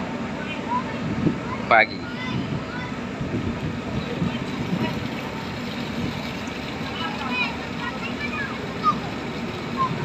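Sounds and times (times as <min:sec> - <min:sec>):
ship engine rumbling: 0:00.0 - 0:10.0
wind noise: 0:00.9 - 0:07.8.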